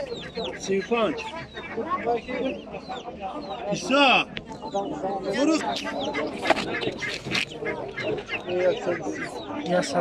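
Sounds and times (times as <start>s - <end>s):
chickens clucking: 0.0s - 10.0s
people talking: 0.0s - 10.0s.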